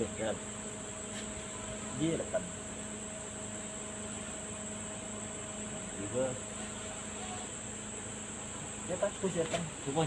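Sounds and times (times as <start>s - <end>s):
faint low hum: 0.0s - 10.0s
high-pitched insect chorus: 0.0s - 10.0s.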